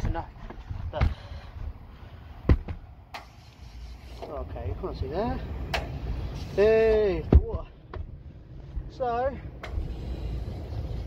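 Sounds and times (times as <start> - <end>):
low rumbling handling noise: 0.0 - 11.0.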